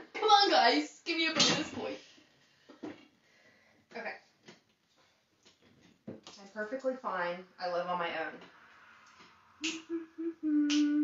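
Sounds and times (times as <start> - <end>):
finger snaps: 9.6 - 10.0, 10.6 - 11.0
woman humming a tune: 9.8 - 11.0.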